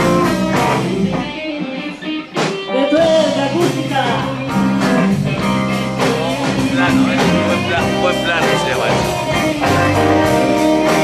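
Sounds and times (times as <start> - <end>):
blues electric guitar: 0.0 - 11.0.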